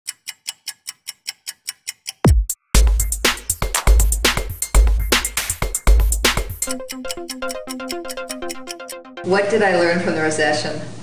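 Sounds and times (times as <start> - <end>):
stopwatch ticking: 0.1 - 9.2.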